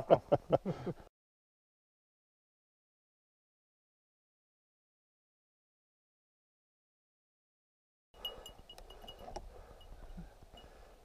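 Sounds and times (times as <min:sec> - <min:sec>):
faint metallic tinkling: 0:08.2 - 0:11.0.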